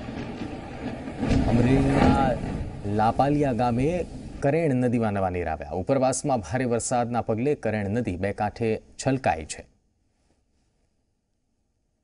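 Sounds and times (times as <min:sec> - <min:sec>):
even rushing noise: 0:00.0 - 0:05.2
man speaking: 0:01.4 - 0:09.8.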